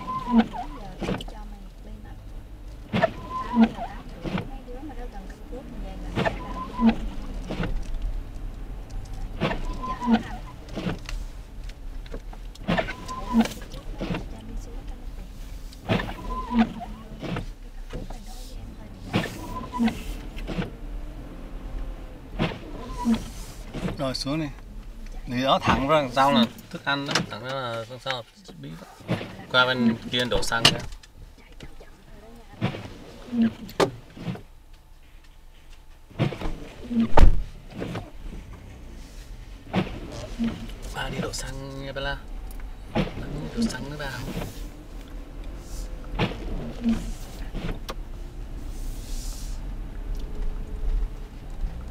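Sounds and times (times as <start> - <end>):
wiper squeaking across glass: 0.0 - 1.4, 2.8 - 7.9, 9.1 - 11.1, 12.6 - 14.4, 15.7 - 20.8, 22.4 - 24.1, 32.6 - 34.5, 36.2 - 38.3, 38.9 - 41.6, 42.9 - 47.9
car humming: 0.0 - 51.9.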